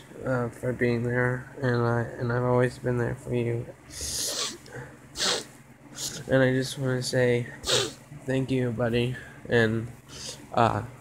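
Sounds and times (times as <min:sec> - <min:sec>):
sharp nasal intake of breath: 0:03.9 - 0:04.6, 0:05.2 - 0:06.2, 0:07.6 - 0:08.0.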